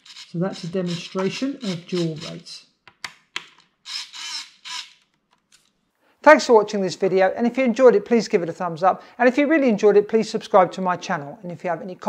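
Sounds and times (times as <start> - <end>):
servos whirring: 0.0 - 2.6, 3.8 - 5.0.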